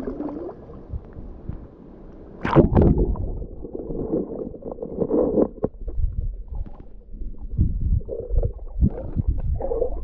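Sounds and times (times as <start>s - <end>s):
muffled underwater water surges: 0.0s - 10.0s.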